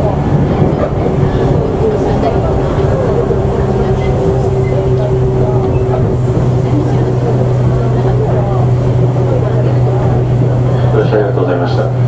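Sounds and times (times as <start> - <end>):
train car running drone: 0.0 - 12.0.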